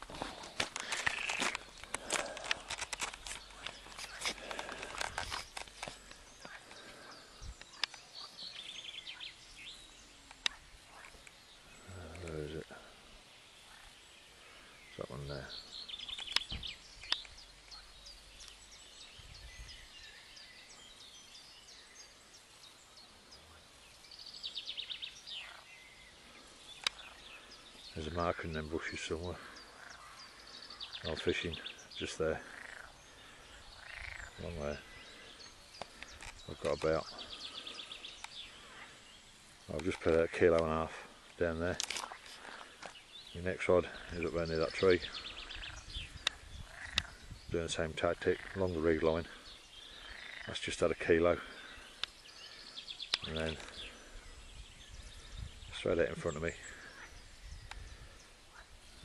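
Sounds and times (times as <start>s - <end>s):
sharp clicks: 0.0s - 6.6s, 16.0s - 17.8s, 26.8s - 27.1s, 46.2s - 47.1s
small birds chirping: 0.0s - 59.0s
bird trilling and chirping: 29.6s - 40.0s, 44.0s - 47.4s.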